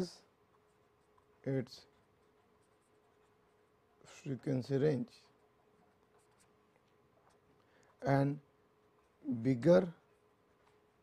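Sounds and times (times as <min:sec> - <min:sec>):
low steady hum: 0:00.0 - 0:11.0
pen scratching on paper: 0:00.5 - 0:04.2, 0:05.3 - 0:07.5.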